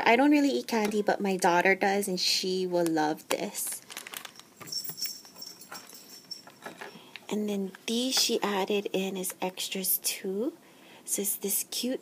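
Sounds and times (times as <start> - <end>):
plastic bags rustling: 2.8 - 8.6.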